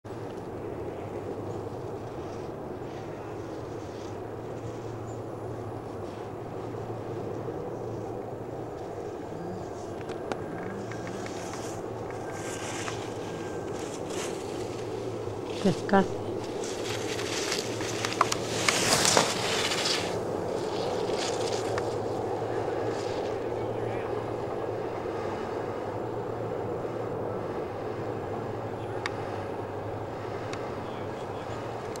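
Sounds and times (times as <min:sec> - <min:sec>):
steady low hum: 0:00.0 - 0:32.0
skis scraping on hard snow: 0:11.2 - 0:14.7, 0:16.6 - 0:21.9.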